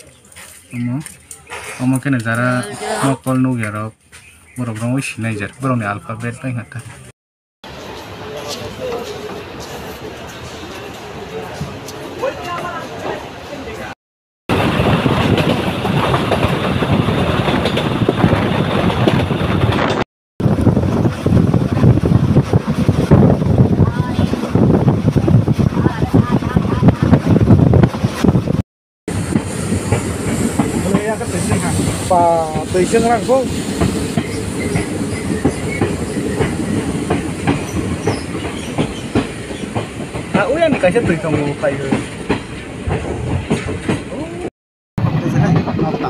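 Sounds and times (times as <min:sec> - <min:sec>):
wind on microphone: 0:14.5 - 0:28.6
train wheels rumbling and rattling: 0:14.5 - 0:46.0.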